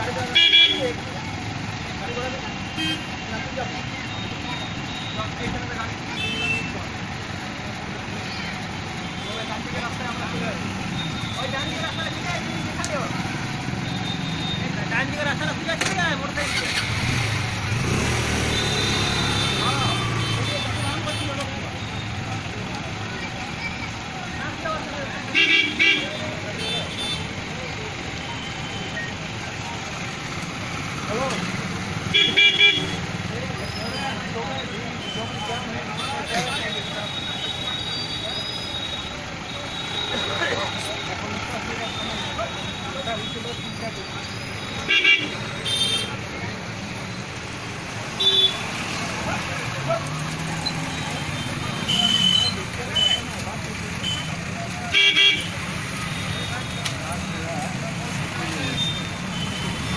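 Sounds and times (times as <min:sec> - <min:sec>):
crowd chatter: 0:00.0 - 0:59.9
motorbikes and cars idling: 0:00.0 - 0:59.9
vehicle horns honking: 0:00.2 - 0:01.0, 0:02.6 - 0:03.2, 0:06.1 - 0:06.8, 0:17.7 - 0:22.2, 0:25.3 - 0:27.4, 0:32.0 - 0:33.2, 0:34.9 - 0:46.3, 0:48.1 - 0:49.0, 0:50.7 - 0:53.4, 0:54.0 - 0:57.0, 0:58.5 - 0:59.9.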